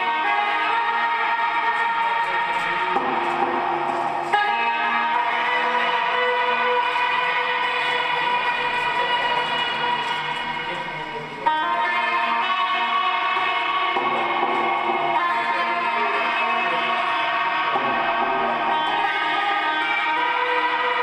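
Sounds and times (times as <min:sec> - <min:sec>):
lap steel guitar drone: 0:00.0 - 0:21.0.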